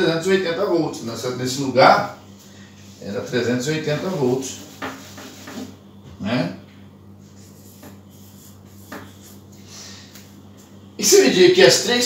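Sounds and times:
marker scratching on whiteboard: 3.9s - 5.8s, 7.2s - 9.6s.

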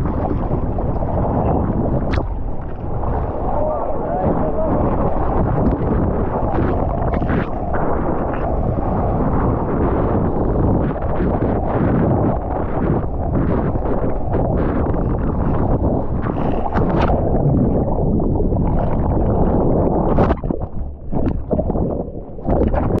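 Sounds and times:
water rushing and splashing: 0.0s - 23.0s
wind buffeting microphone: 0.0s - 23.0s.

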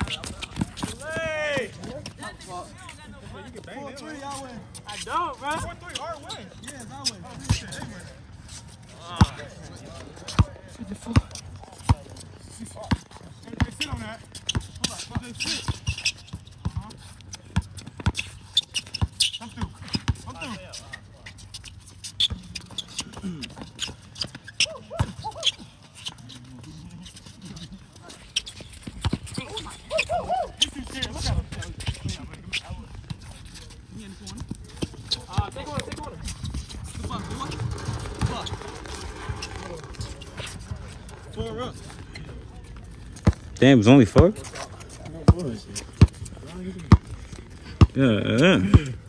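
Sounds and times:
basketball bouncing on asphalt: 12.8s - 20.4s, 28.6s - 29.6s, 34.3s - 44.4s, 45.0s - 48.0s
players calling out: 34.1s - 43.0s.

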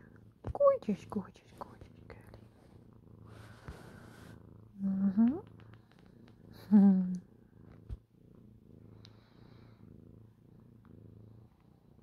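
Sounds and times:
cat purring: 0.0s - 12.0s.

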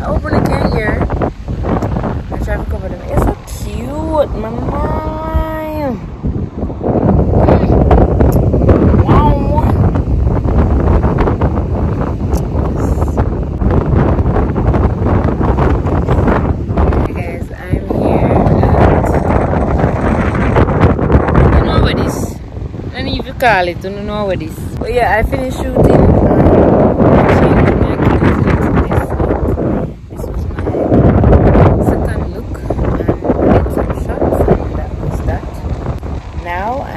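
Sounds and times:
wind buffeting microphone: 0.0s - 36.9s.

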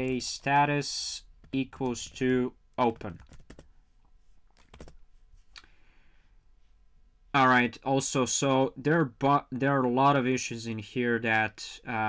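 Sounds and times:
typing on computer keyboard: 2.9s - 3.7s, 4.6s - 5.0s.

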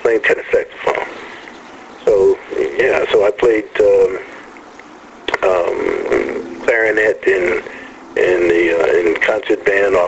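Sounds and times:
man talking: 0.0s - 1.4s, 2.0s - 4.5s, 5.3s - 10.0s.

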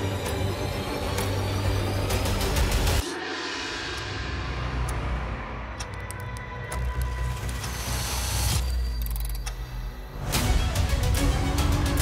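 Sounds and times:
dark cinematic music with drone: 0.0s - 12.0s.

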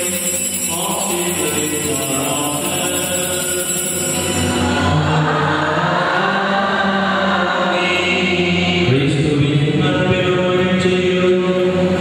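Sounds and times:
liturgical chant in long notes: 0.0s - 12.0s.

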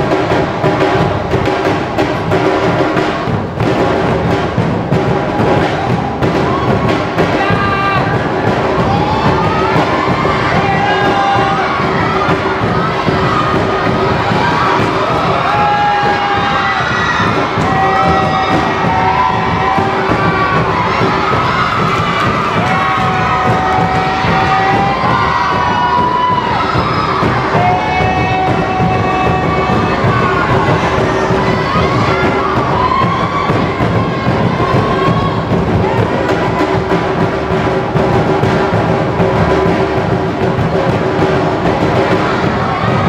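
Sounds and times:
crowd cheering and shouting: 0.0s - 43.0s
large drums beating: 0.0s - 43.0s.

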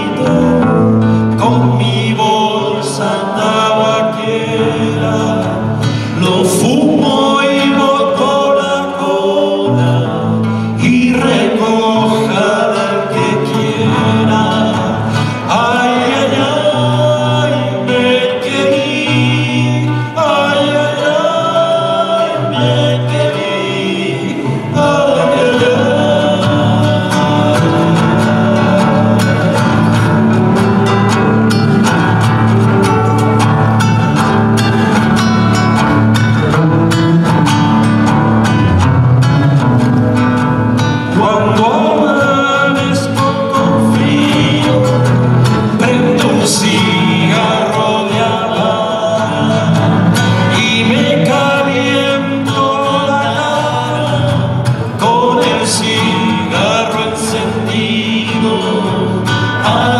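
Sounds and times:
men singing: 0.0s - 59.9s
strummed acoustic guitars: 0.0s - 59.9s.

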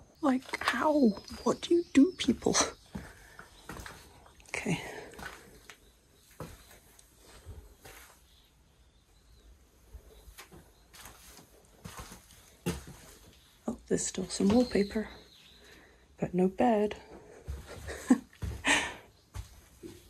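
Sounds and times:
footsteps on debris: 10.4s - 13.4s.

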